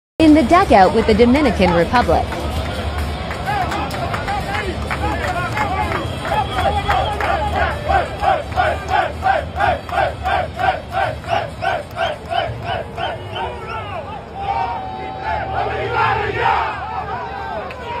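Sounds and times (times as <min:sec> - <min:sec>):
people cheering: 0:00.4 - 0:18.0
group chanting in rhythm: 0:06.4 - 0:13.3, 0:14.6 - 0:17.4.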